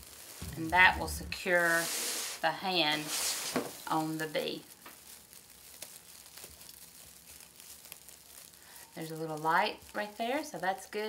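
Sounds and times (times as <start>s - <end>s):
plastic mesh crinkling: 0.0s - 11.0s.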